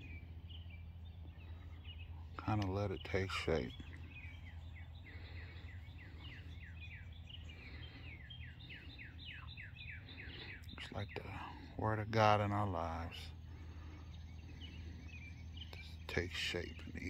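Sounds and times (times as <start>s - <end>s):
bird chirping: 0.0s - 17.0s
low outdoor hum: 0.0s - 17.0s.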